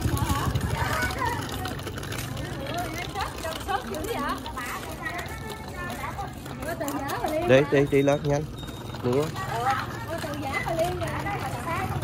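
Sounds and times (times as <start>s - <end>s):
indistinct voices talking: 0.0s - 12.0s
street traffic rumble: 0.0s - 12.0s.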